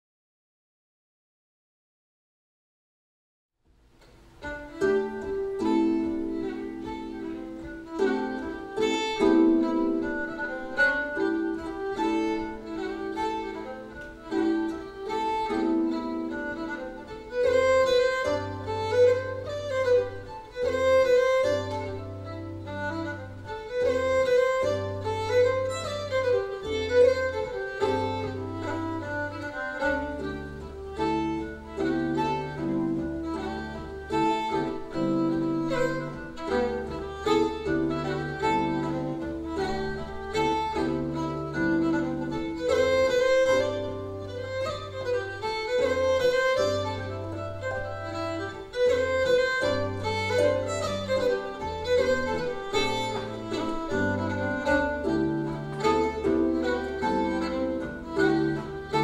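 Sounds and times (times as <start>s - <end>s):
fiddle melody: 4.0s - 59.0s.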